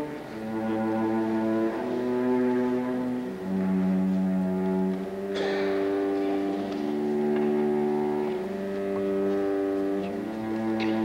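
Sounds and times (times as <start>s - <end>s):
string quartet playing chords: 0.0s - 11.0s.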